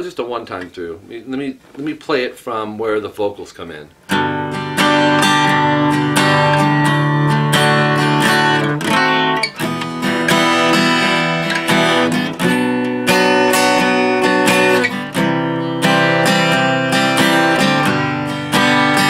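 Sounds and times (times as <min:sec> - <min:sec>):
acoustic guitar strumming chords: 0:03.9 - 0:19.0.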